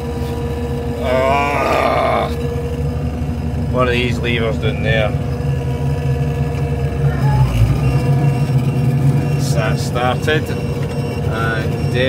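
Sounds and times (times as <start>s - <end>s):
diesel engine hum and whine: 0.0s - 12.0s.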